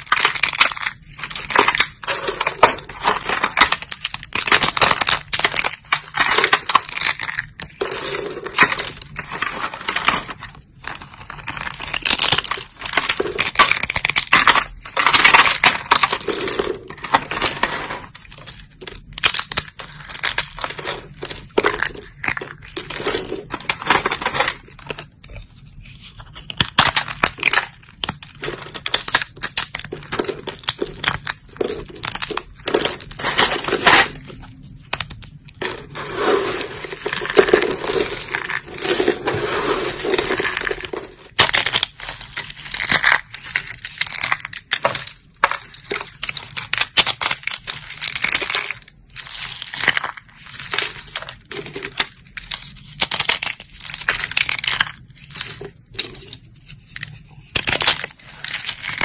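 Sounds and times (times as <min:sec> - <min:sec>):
soap plates cracking: 0:00.0 - 0:59.0.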